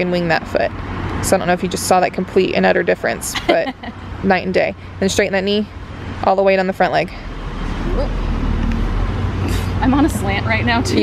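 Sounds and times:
road traffic rumble: 0.0 - 11.0
vehicle approaching: 0.0 - 11.0.

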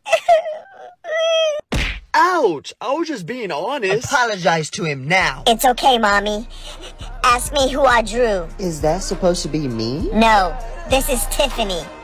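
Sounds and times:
noisy thud: 1.7 - 2.1.

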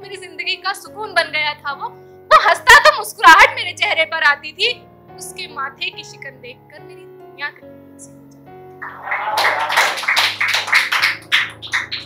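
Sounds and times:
music with soft held notes: 0.0 - 12.0.

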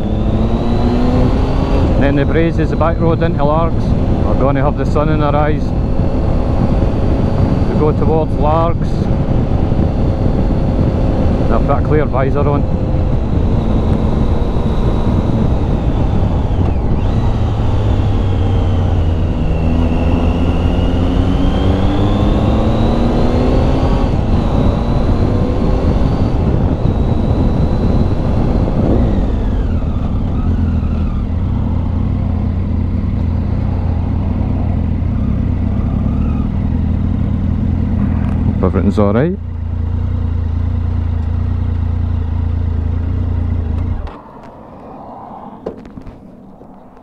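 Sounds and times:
wind noise: 0.0 - 31.9, 43.6 - 47.0
motorcycle engine accelerating: 0.0 - 47.0.

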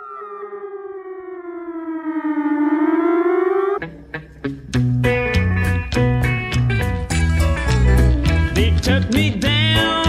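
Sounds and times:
siren-like electronic tone: 0.0 - 3.9
band with sharp guitar chords: 3.8 - 10.0.

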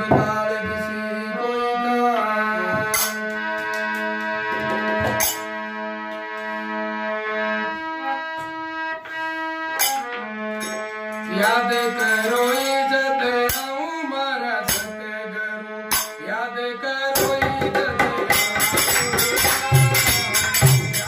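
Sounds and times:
harmonium melody: 0.0 - 21.0
sharp percussion strokes: 9.8 - 13.8, 18.1 - 21.0.

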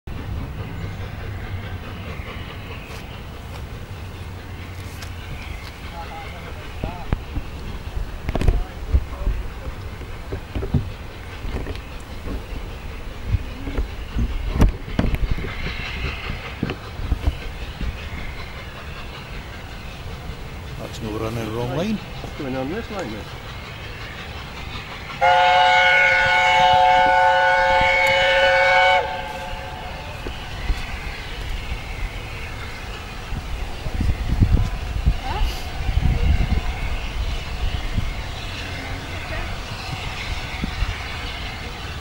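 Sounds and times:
steam locomotive rumbling: 0.0 - 42.0
train knocks and clanks: 0.1 - 42.0.

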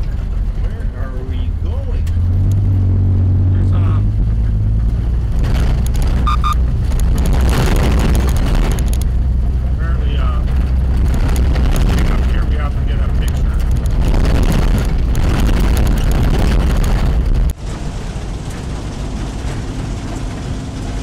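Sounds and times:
car cabin rumble: 0.0 - 21.0
gravel crackles under tyres: 4.8 - 21.0.

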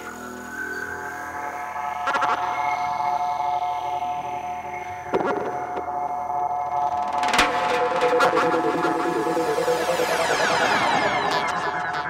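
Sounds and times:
held synthesizer chord: 7.4 - 12.0
wavering low synth line: 7.4 - 12.0.

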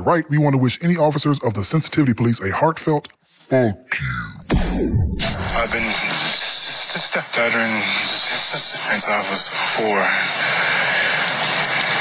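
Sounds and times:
steady rushing noise: 4.5 - 6.3.

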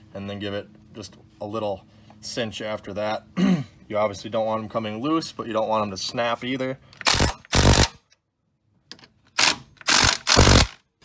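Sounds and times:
impact wrench hammering: 9.4 - 10.8.

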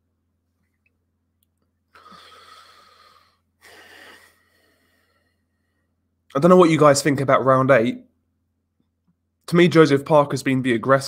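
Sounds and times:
faint steady hum: 0.0 - 11.0
man breathing: 1.9 - 6.1.

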